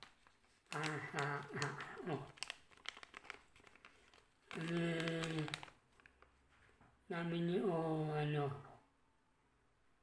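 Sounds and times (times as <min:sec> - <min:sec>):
plastic bag crinkling: 0:00.0 - 0:06.6.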